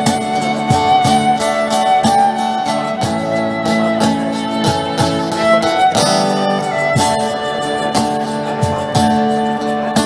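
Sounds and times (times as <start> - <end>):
strummed guitars: 0.0 - 10.0
violin melody: 0.0 - 10.0.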